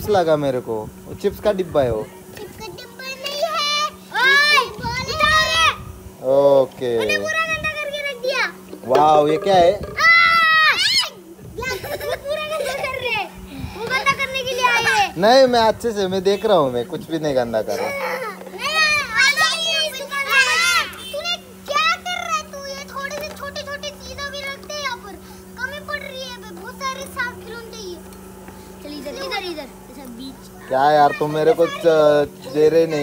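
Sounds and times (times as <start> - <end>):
low hum: 0.0 - 33.0
child calling out: 2.1 - 5.9, 9.8 - 15.2, 17.7 - 28.0.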